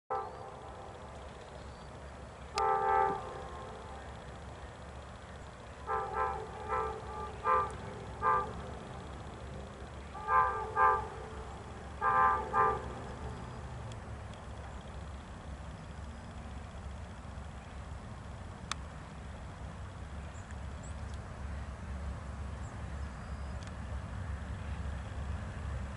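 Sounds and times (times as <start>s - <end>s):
locomotive air horn: 0.1s - 0.9s, 2.5s - 4.1s, 5.8s - 9.4s, 10.0s - 13.8s
low steady rumble: 0.1s - 25.9s.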